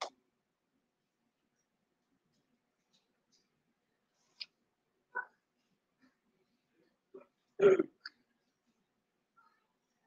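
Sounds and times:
person making throat noise: 7.2 - 8.1.

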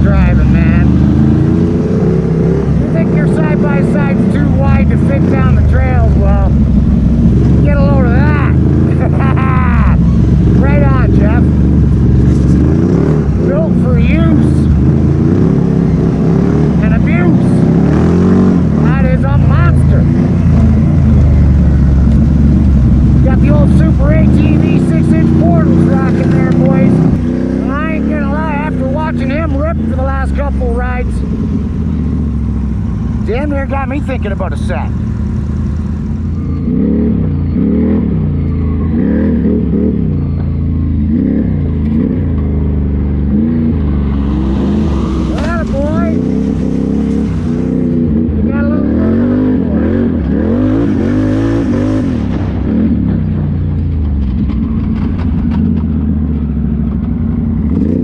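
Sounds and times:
atv engine revving: 0.0 - 58.0.

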